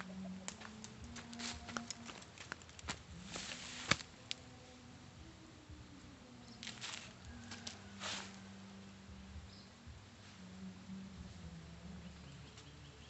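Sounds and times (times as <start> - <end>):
dry leaves rustling: 0.0 - 4.5, 6.6 - 8.7
burning leaves crackling: 0.0 - 4.8, 6.5 - 8.7.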